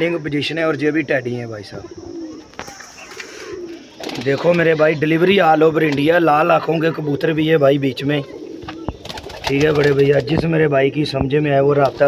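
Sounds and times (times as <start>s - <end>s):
pigeons cooing: 0.0s - 10.6s.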